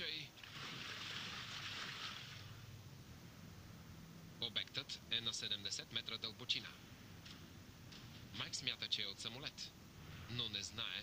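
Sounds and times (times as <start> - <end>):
steady low hum: 0.0 - 11.0
seawater churning and splashing: 0.4 - 2.7.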